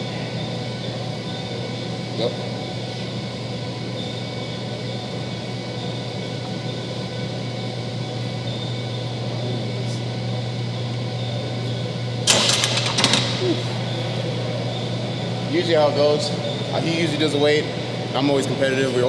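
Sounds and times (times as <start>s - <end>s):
steady background hum: 0.0s - 19.0s
barbell clanking into rack: 12.3s - 13.6s.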